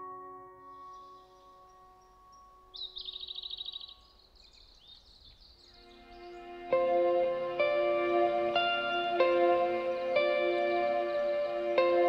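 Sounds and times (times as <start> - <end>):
loud keyboard chord: 0.0 - 3.2, 5.8 - 12.0
held keyboard notes: 0.0 - 4.0, 5.7 - 12.0
songbird trilling and chirping: 0.6 - 6.8
soft synth pad: 5.3 - 12.0.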